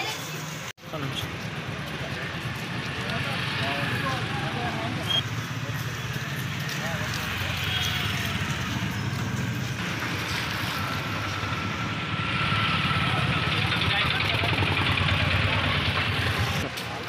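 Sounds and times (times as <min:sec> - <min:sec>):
low traffic rumble: 0:00.0 - 0:17.0.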